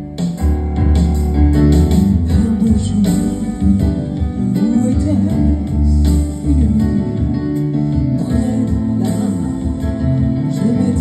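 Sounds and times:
musical accompaniment with bass beats: 0:00.0 - 0:11.0
woman singing: 0:02.3 - 0:07.4, 0:08.1 - 0:11.0.

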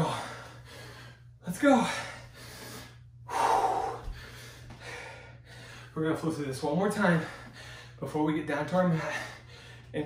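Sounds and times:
man breathing hard: 0:00.0 - 0:06.0, 0:07.0 - 0:08.0, 0:08.8 - 0:10.0.

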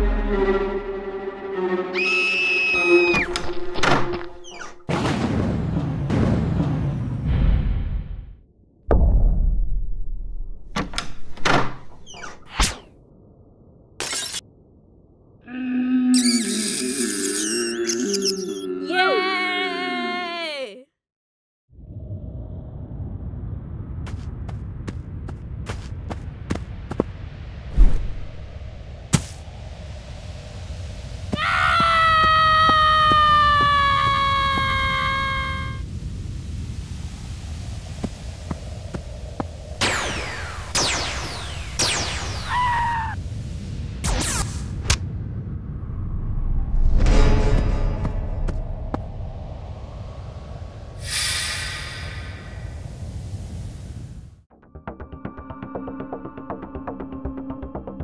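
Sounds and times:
high-pitched scream: 0:01.9 - 0:03.3, 0:16.1 - 0:20.8, 0:31.4 - 0:35.8, 0:42.3 - 0:43.2
falling zap sounds: 0:39.8 - 0:43.2.

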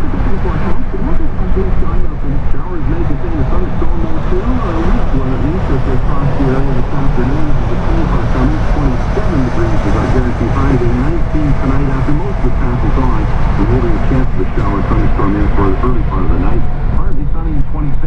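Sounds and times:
radio announcer talking: 0:00.0 - 0:18.0
tyre and road rumble: 0:00.0 - 0:18.0.

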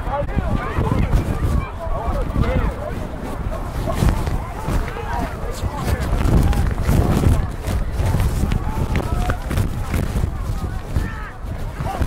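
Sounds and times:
wind rumbling on microphone: 0:00.0 - 0:12.0
distant people shouting: 0:03.6 - 0:12.0.

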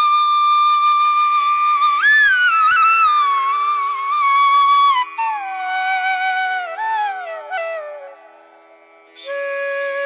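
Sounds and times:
flute melody: 0:00.0 - 0:10.0.

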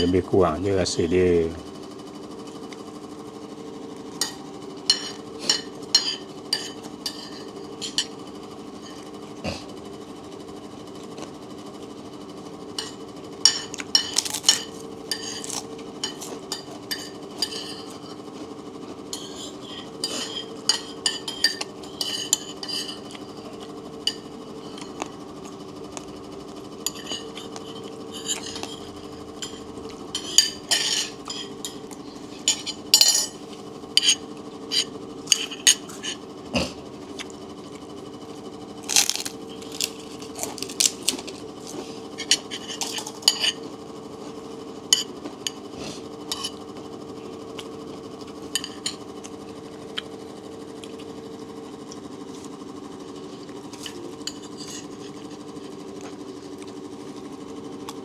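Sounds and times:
metal spoon clinking on plate: 0:29.4 - 0:31.8, 0:32.5 - 0:33.4, 0:42.2 - 0:43.6.

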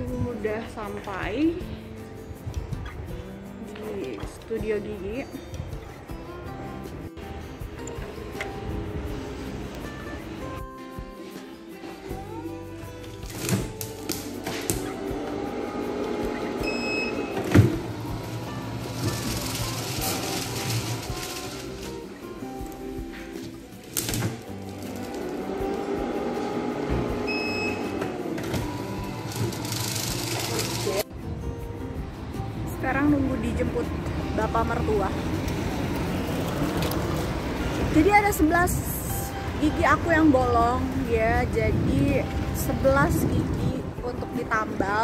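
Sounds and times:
background music: 0:00.0 - 0:45.0
low street rumble: 0:14.2 - 0:45.0
short beep: 0:16.6 - 0:17.4.

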